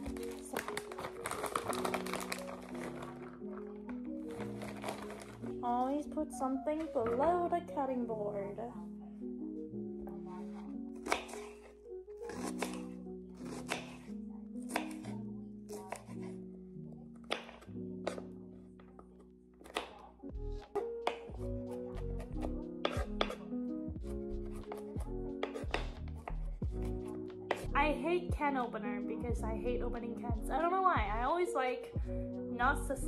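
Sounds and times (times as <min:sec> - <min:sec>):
background music: 0:00.0 - 0:33.0
knife chopping on wooden board: 0:11.0 - 0:14.1, 0:14.7 - 0:15.1, 0:17.3 - 0:18.2, 0:19.6 - 0:20.0, 0:20.7 - 0:27.7.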